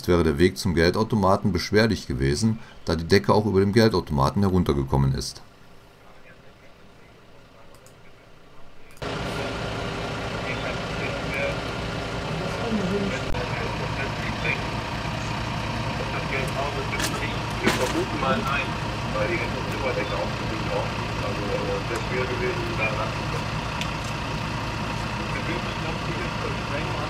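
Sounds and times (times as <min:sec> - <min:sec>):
engine idling: 0:08.9 - 0:27.0
indistinct voices: 0:08.9 - 0:27.0.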